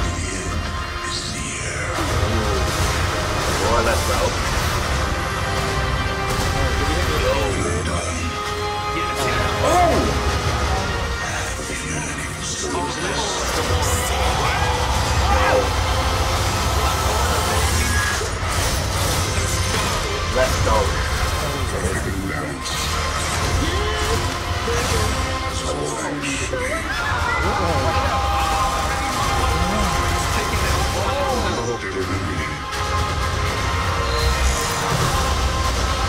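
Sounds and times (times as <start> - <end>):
people's voices: 0.0 - 4.6, 6.2 - 36.0
dramatic film score: 0.0 - 36.0
sound effects: 0.0 - 36.0.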